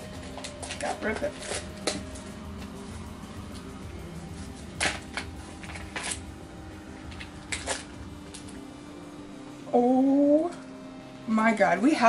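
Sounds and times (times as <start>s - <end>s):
foil card pack crinkling: 0.0s - 2.5s, 4.4s - 6.4s, 7.1s - 8.7s
low steady hum: 0.0s - 12.0s.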